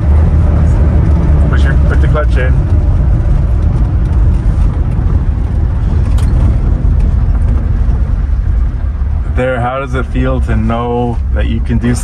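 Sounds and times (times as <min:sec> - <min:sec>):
truck engine and road rumble: 0:00.0 - 0:12.0.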